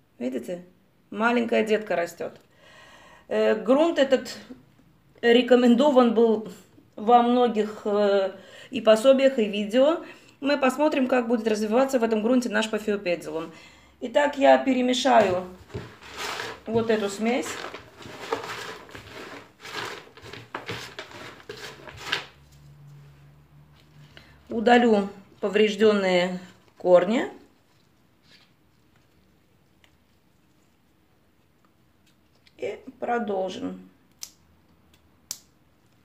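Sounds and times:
bark chips rustling in basin: 15.1 - 22.6.

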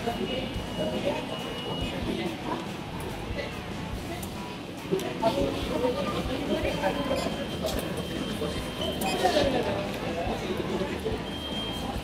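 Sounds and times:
background noise: 0.0 - 12.0.

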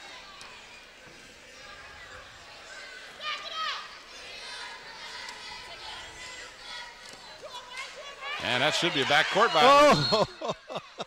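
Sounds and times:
murmur of voices: 0.0 - 11.0
high-pitched shouts: 8.2 - 10.3.

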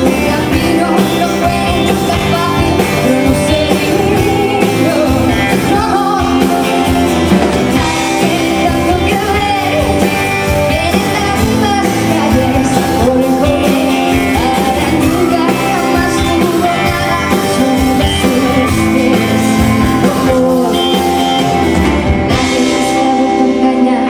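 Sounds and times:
female lead vocal: 0.0 - 21.6, 22.2 - 24.0
steady drum beat: 0.0 - 23.2
electric guitar: 0.0 - 24.0.

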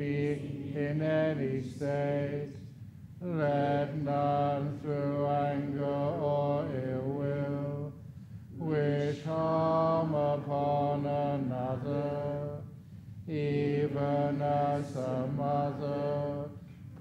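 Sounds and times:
monk chanting in deep voice: 0.0 - 16.6.

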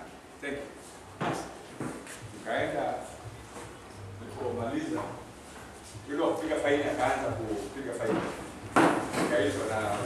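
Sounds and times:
sharp knocks: 8.2 - 9.4.

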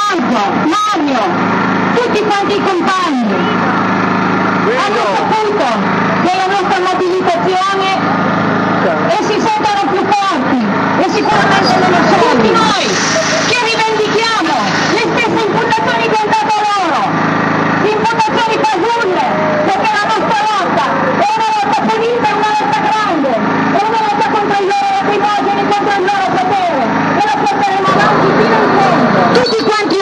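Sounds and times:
woman speaking over loudspeaker: 0.0 - 1.4, 2.0 - 3.7, 4.6 - 8.0, 9.0 - 17.2, 17.8 - 30.0
petrol generator humming: 0.0 - 30.0.

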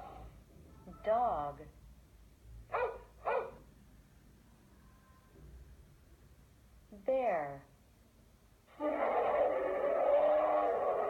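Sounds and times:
recorded dog barking: 2.7 - 3.7.

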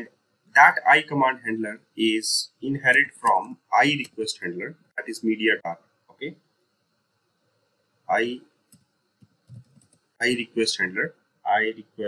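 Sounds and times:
person speaking: 0.0 - 6.3, 8.1 - 8.4, 9.5 - 12.0.

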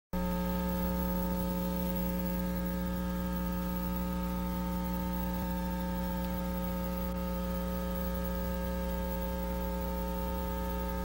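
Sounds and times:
electrical mains hum: 0.2 - 11.0.

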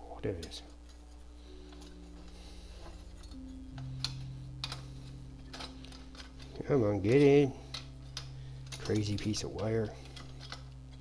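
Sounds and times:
soft ambient music: 0.0 - 11.0.

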